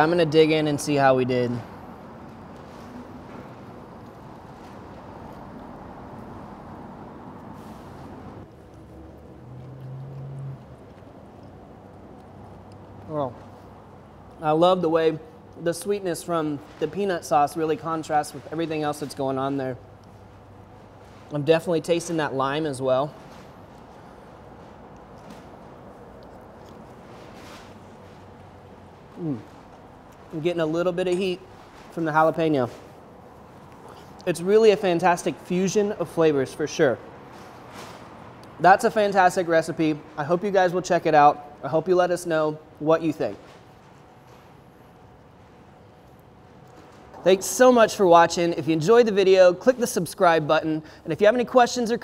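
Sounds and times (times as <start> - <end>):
low background noise: 0.0 - 52.0
steady low hum: 0.0 - 52.0.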